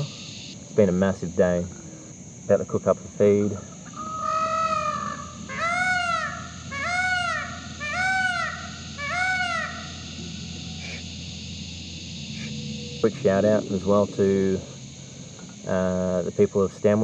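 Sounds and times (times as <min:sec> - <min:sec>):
peacock calling: 0:03.5 - 0:16.2.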